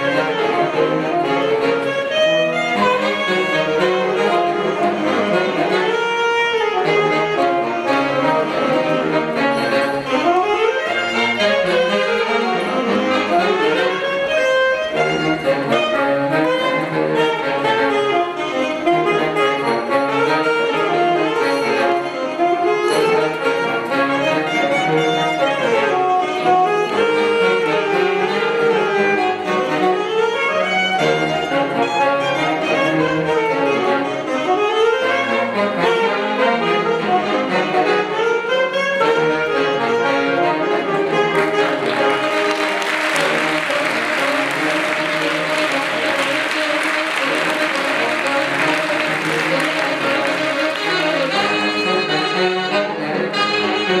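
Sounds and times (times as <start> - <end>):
saxophones and brass playing: 0.0 - 54.0.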